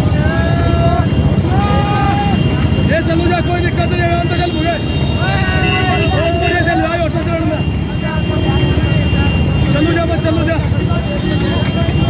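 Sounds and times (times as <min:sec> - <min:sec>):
vehicle noise: 0:00.0 - 0:12.0
wind rumble: 0:00.0 - 0:12.0.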